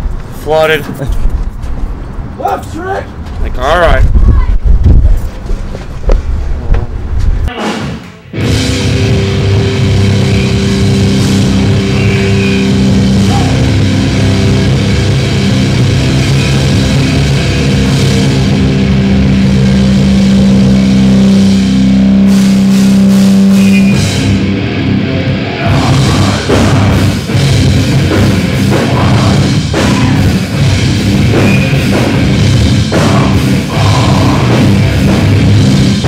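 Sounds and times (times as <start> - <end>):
loud low rumble: 3.9 - 36.0
metal band music: 7.5 - 36.0.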